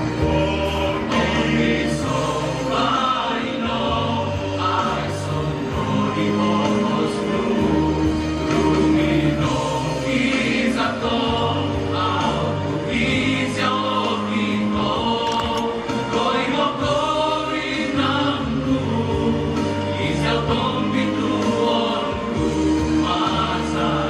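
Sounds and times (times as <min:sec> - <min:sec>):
male choir singing: 0:00.0 - 0:24.0.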